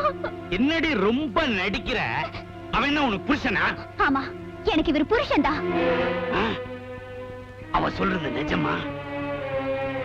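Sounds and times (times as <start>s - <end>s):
background music: 0.0s - 10.0s
film dialogue: 0.0s - 10.0s.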